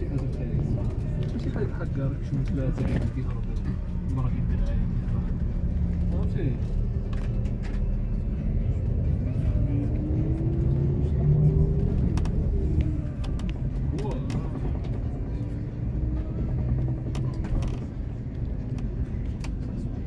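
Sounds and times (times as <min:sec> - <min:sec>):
vehicle cabin rumble: 0:00.0 - 0:20.0
engine note rising: 0:03.9 - 0:18.4.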